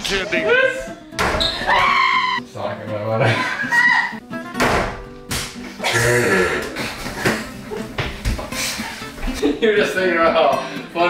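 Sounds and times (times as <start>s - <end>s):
laughter: 3.2s - 4.2s.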